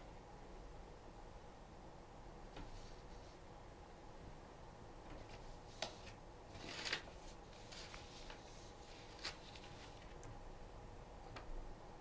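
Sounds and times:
paper rustle: 0:05.1 - 0:10.4.

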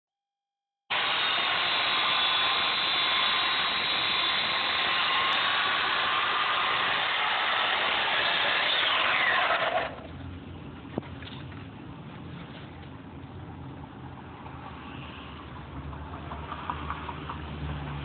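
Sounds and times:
electric chainsaw cutting foam: 0:00.9 - 0:10.0
motor winding down whine: 0:00.9 - 0:10.1.

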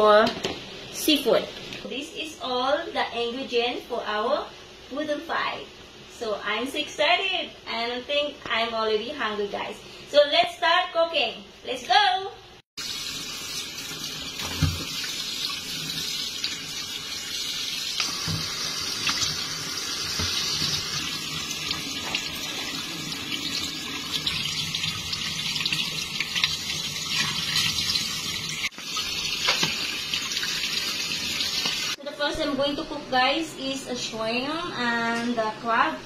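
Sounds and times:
faucet running into a steel sink: 0:12.8 - 0:32.0.

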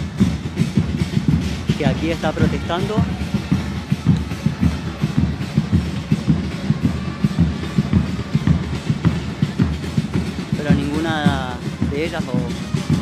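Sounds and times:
drums beating fast rhythm: 0:00.0 - 0:13.0.

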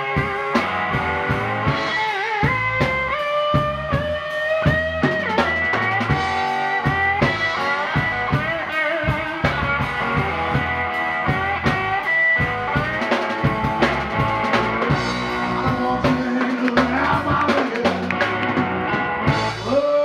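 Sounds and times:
drum kit beat: 0:00.0 - 0:20.0
electric bass: 0:00.0 - 0:20.0.

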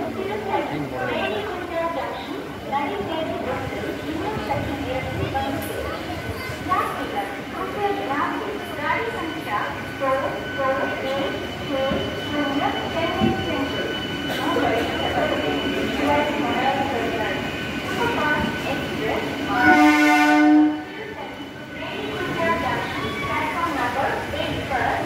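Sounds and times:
crowd chatter: 0:00.0 - 0:25.0
train rolling slowly: 0:00.0 - 0:25.0
locomotive horn blast: 0:19.5 - 0:20.9.

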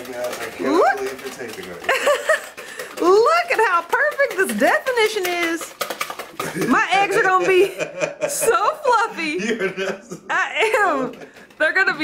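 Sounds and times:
wire whisk beating eggs in bowl: 0:00.0 - 0:09.8, 0:10.6 - 0:12.0.

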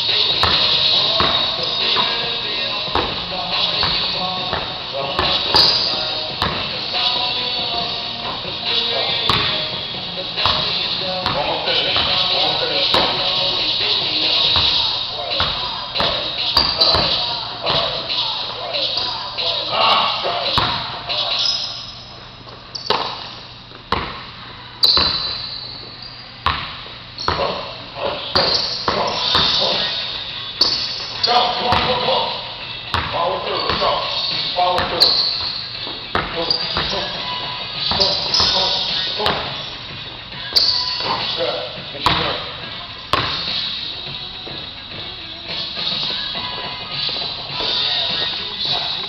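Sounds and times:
basketball bouncing on gym floor: 0:00.3 - 0:02.2, 0:02.8 - 0:06.8, 0:07.6 - 0:13.4, 0:14.0 - 0:18.0, 0:20.5 - 0:21.0, 0:22.4 - 0:29.9, 0:30.6 - 0:32.1, 0:32.9 - 0:37.2, 0:37.8 - 0:39.7, 0:42.0 - 0:43.6.

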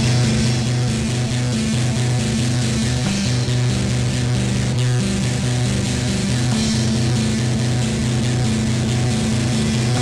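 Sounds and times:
bass guitar: 0:00.0 - 0:10.0
distorted electric guitar riff: 0:00.0 - 0:10.0.

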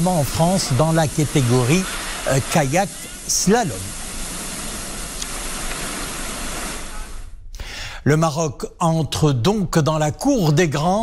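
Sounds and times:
whitewater rushing: 0:00.0 - 0:07.2.

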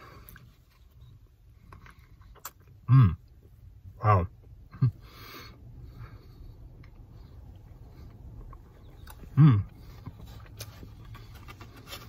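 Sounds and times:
low steady rumble: 0:00.0 - 0:12.0
quiet chewing: 0:06.4 - 0:12.0.

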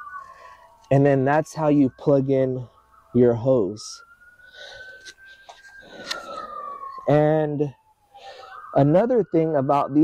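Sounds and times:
distant siren wailing: 0:00.0 - 0:10.0.

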